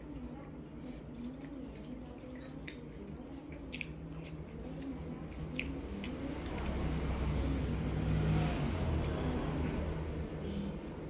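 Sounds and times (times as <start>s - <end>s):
low vehicle engine rumble: 3.0s - 11.0s.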